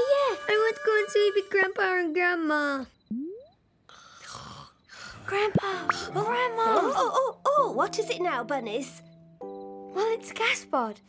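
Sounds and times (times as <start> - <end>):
cartoon snore: 4.2 - 4.8.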